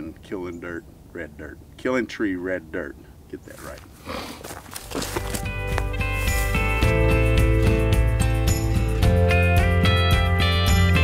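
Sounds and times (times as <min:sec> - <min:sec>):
music with steady beat: 0:05.2 - 0:11.0.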